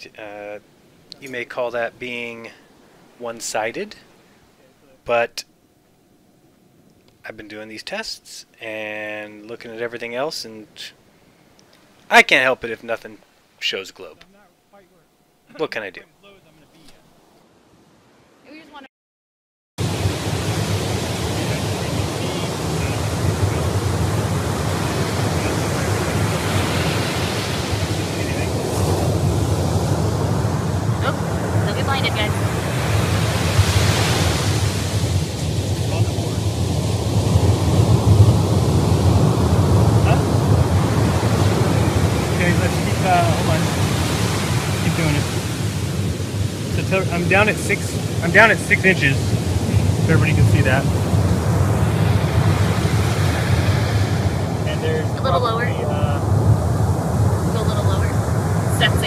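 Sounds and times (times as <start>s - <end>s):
surf breaking on beach: 19.8s - 59.0s
wind buffeting microphone: 19.8s - 59.0s
distant voice: 20.4s - 29.6s, 40.0s - 45.3s, 46.7s - 50.9s.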